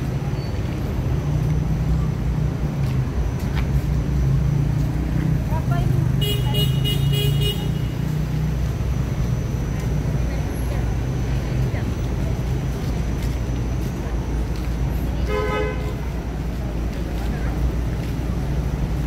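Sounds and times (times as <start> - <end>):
street traffic rumble: 0.0 - 19.0
vehicle horn: 6.2 - 8.0, 15.2 - 16.0.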